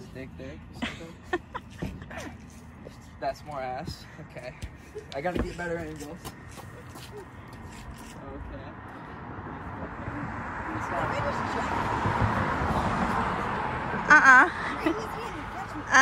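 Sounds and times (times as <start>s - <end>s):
passing vehicle rushing: 8.6s - 16.0s.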